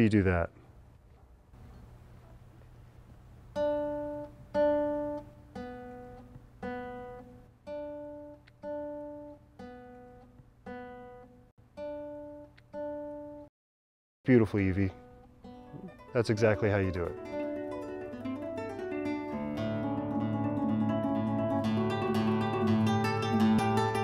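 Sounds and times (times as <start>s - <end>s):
classical guitar single notes: 14.9s - 24.0s.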